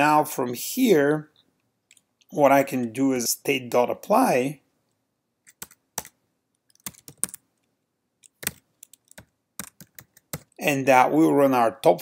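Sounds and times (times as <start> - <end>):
computer keyboard typing: 5.5 - 7.4, 8.2 - 10.6.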